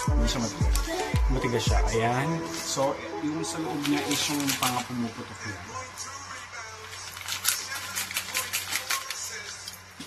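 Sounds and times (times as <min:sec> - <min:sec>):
quiet background music: 0:00.0 - 0:10.0
popping candy crackling: 0:06.9 - 0:09.9.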